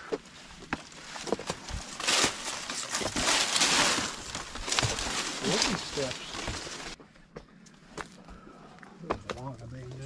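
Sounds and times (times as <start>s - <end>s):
footsteps on stone steps: 0.0s - 8.4s, 9.0s - 10.0s
palm fronds rustling: 0.2s - 7.0s.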